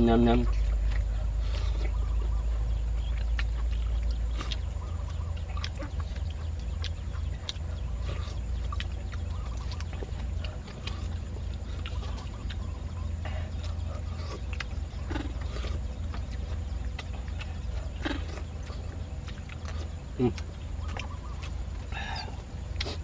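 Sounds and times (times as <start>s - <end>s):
steady low rumble: 0.0s - 23.0s.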